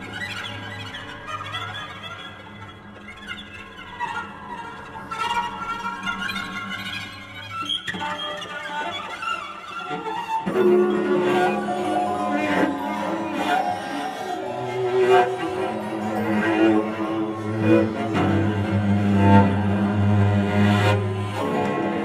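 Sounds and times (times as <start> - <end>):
cello playing fast notes: 7.8 - 22.0
low held tone: 10.5 - 20.0.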